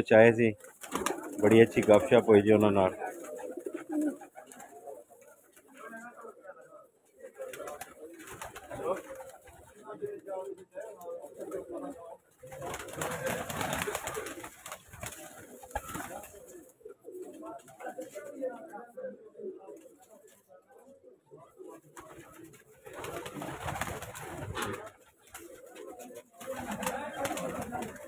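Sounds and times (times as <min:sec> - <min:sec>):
wings flapping: 0:00.6 - 0:05.8, 0:07.4 - 0:09.7, 0:12.4 - 0:16.7, 0:22.0 - 0:28.0
pigeons cooing: 0:00.8 - 0:05.4, 0:11.2 - 0:18.3.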